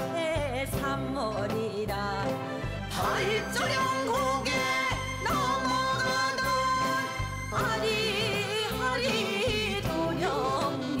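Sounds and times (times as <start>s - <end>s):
band backing track with beat: 0.0s - 11.0s
person singing with vibrato: 0.0s - 11.0s.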